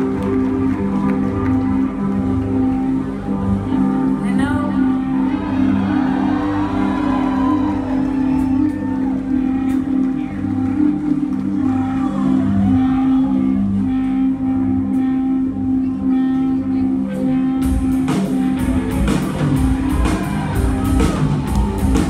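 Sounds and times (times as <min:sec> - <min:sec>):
crowd voices: 0:00.0 - 0:22.0
rock band droning chords: 0:00.0 - 0:22.0.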